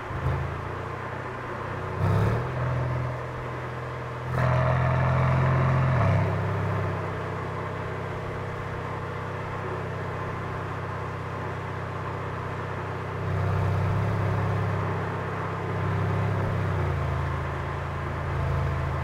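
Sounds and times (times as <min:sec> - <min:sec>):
car engine revving and cruising: 0:00.0 - 0:19.0.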